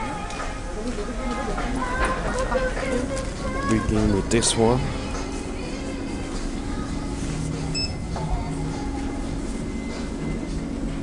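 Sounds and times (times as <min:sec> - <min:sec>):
background music: 0:00.0 - 0:11.0
shopping mall hum: 0:00.0 - 0:11.0
high electronic beep: 0:07.7 - 0:08.0.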